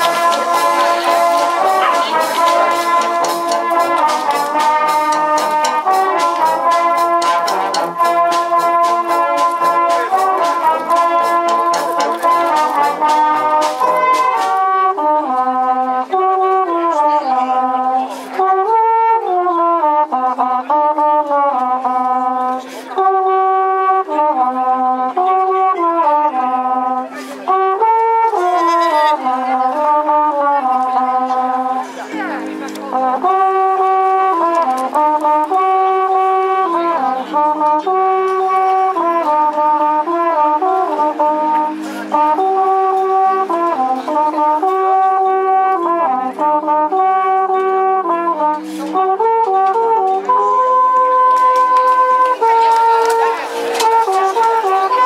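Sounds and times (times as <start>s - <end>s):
brass band playing: 0.0s - 55.0s.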